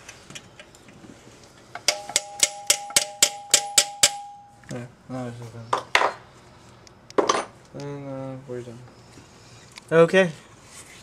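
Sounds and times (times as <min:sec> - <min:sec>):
ringing metal tone: 0:01.9 - 0:04.7.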